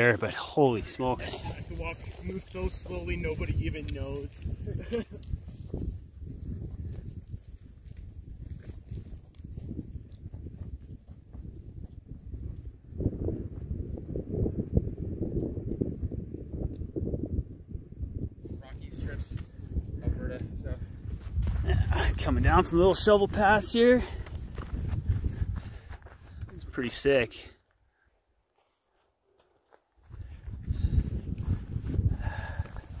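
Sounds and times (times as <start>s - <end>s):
wind buffeting microphone: 0.0s - 26.8s, 30.0s - 33.0s.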